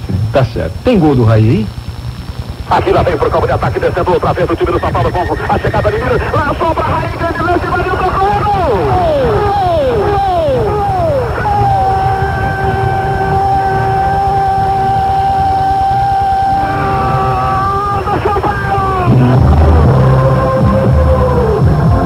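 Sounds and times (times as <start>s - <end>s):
radio announcer shouting: 2.6s - 21.7s
long held cry of announcer: 8.1s - 19.4s.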